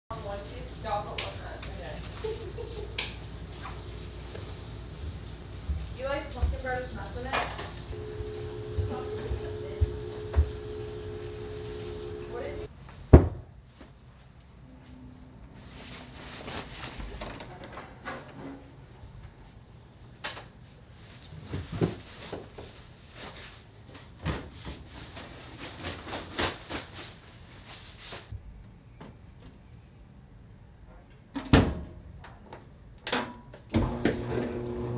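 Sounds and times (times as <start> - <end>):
steady low hum: 6.8 - 12.7
footsteps on carpeted stairs: 7.6 - 12.5.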